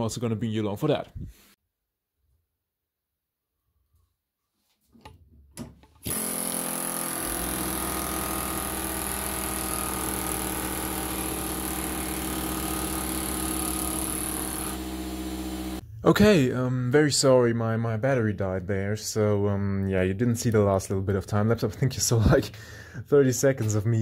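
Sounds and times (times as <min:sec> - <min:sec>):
power tool running: 0:06.0 - 0:15.8.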